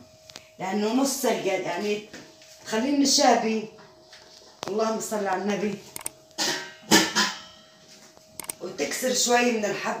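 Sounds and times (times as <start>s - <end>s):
metal pot lid clank: 6.4s - 7.6s.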